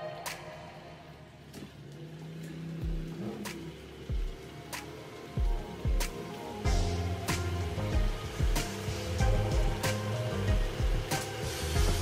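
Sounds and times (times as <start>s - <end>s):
car engine running: 0.9s - 12.0s
music with steady beat: 2.8s - 12.0s.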